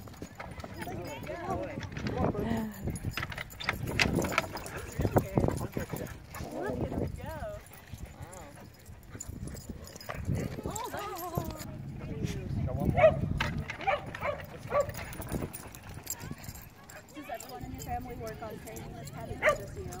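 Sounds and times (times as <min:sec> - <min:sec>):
dogs running: 0:00.0 - 0:12.0, 0:12.7 - 0:20.0.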